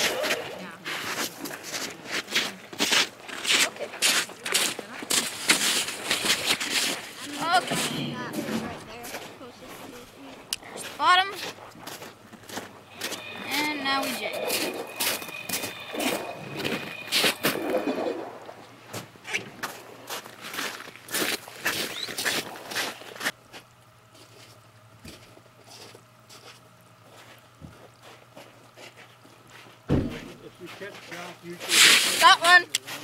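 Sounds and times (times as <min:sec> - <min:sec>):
background voices talking: 0:07.0 - 0:11.6, 0:12.8 - 0:18.2
close voice: 0:07.2 - 0:11.4, 0:13.1 - 0:14.7
low thump: 0:29.9 - 0:30.3.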